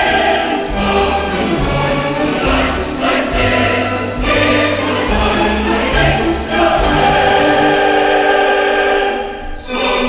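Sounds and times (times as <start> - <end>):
choir singing held notes: 0.0 - 10.0
orchestral music: 0.0 - 10.0.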